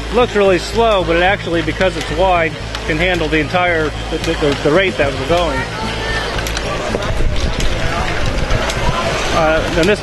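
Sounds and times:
steady low rumble: 0.0 - 9.8
background chatter: 0.0 - 10.0.

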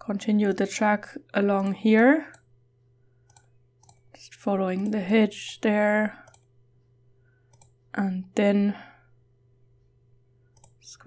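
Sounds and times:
low steady hum: 0.0 - 11.0
computer mouse clicks: 0.4 - 0.8, 1.5 - 2.5, 3.2 - 6.5, 7.5 - 7.8, 10.5 - 11.0.

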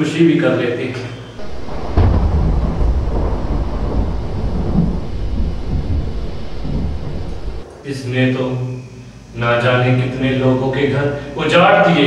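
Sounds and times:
thunder rumbling: 1.4 - 7.7.

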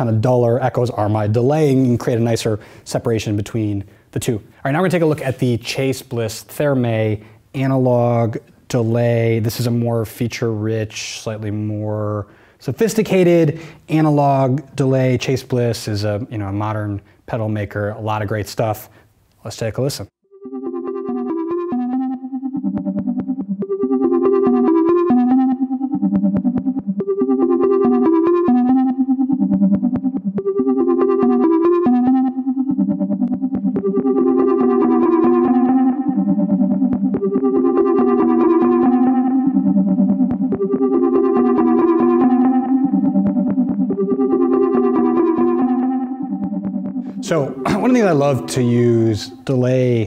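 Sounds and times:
synthesizer sequence with delay echoes: 20.5 - 49.5.

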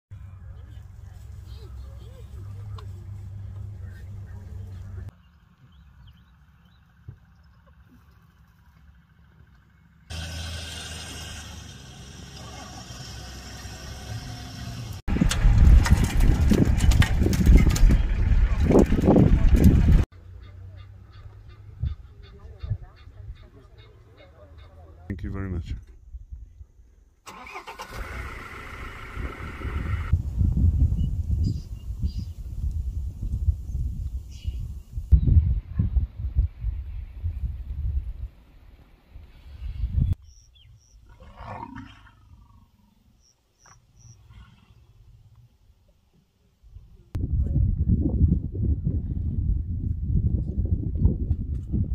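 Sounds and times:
birds chirping: 0.2 - 10.1, 39.4 - 45.1.

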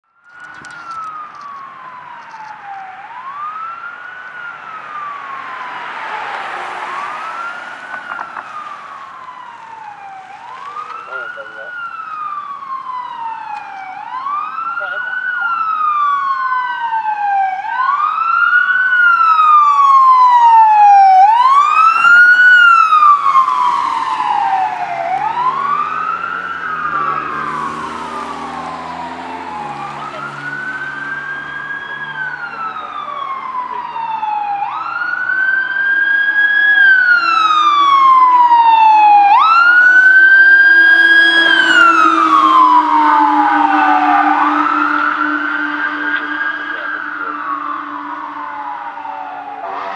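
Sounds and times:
fire truck sirens wailing: 0.0 - 49.9
truck engine: 0.0 - 49.9.

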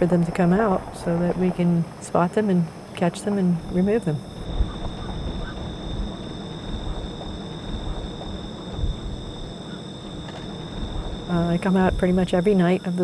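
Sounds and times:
low rumbling background: 0.0 - 2.0, 3.3 - 12.7
insects buzzing: 0.0 - 13.0.

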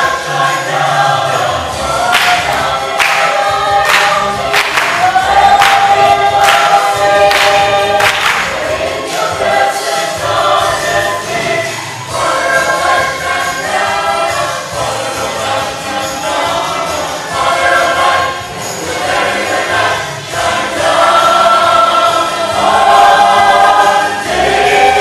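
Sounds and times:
choir singing gospel song: 0.0 - 25.0
musical accompaniment: 0.0 - 25.0.

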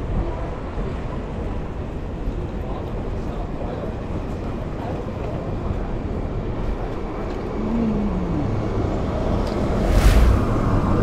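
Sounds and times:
street traffic: 0.0 - 11.0
loud whoosh: 9.6 - 11.0.

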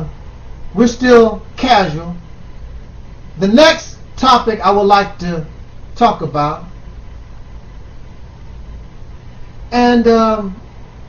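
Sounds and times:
even hiss: 0.0 - 11.0
low steady hum: 0.0 - 11.0.

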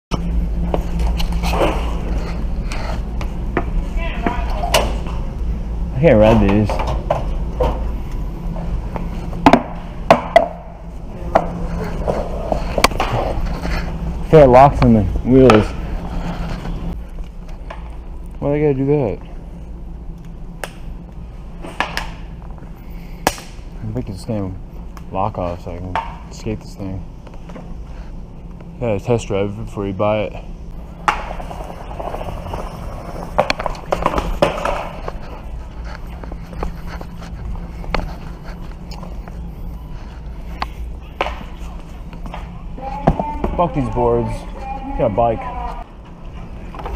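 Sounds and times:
skateboard wheels rolling on floor: 6.2 - 18.1, 30.8 - 46.9
board wheels rolling on floor: 30.7 - 44.4.

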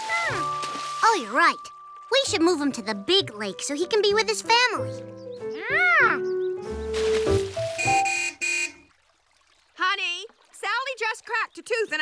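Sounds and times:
light background music: 0.0 - 8.2
vehicle horn honking: 7.8 - 8.9.

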